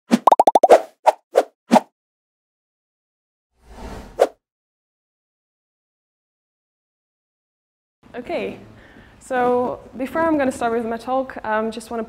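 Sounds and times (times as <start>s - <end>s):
cartoon bubbly pops: 0.1s - 0.8s.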